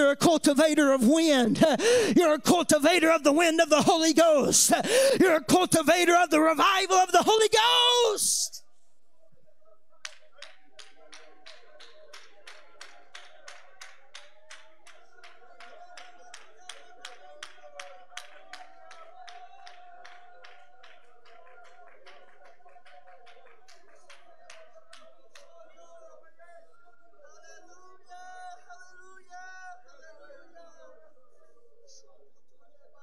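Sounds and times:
hands clapping in rhythm: 10.0 - 25.8.

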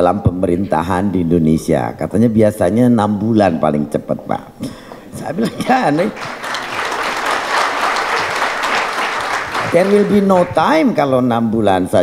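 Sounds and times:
audience applauding: 5.8 - 11.0.

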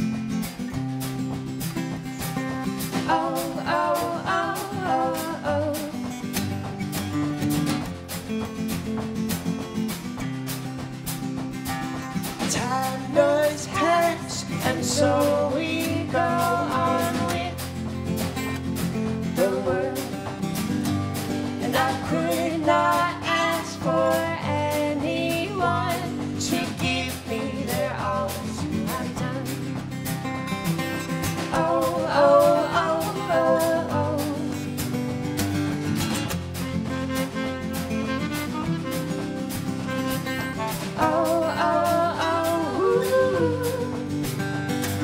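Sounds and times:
drums played with brushes: 0.0 - 45.0
strummed acoustic guitar: 0.0 - 45.0.

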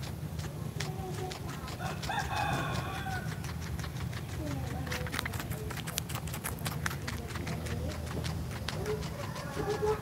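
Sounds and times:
guinea pig chewing crunchily: 0.0 - 10.0
rooster crowing: 1.8 - 3.4.

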